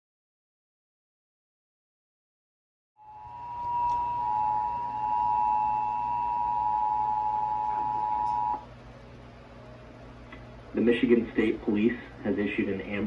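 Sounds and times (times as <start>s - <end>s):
two-tone alert signal: 3.0s - 8.6s.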